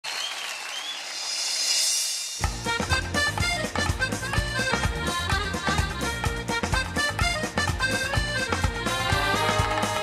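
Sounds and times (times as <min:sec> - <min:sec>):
audience applauding: 0:00.0 - 0:01.4.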